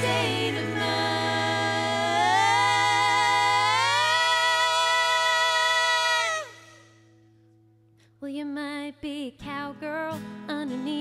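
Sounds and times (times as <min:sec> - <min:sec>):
women singing a sliding note: 0:00.0 - 0:06.8.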